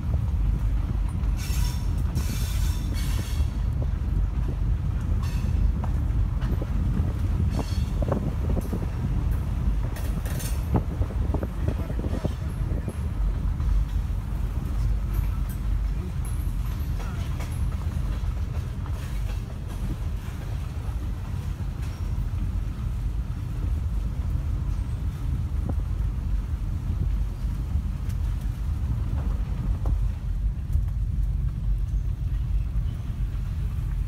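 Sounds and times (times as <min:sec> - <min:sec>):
freight train rolling on rails: 0:00.0 - 0:34.0.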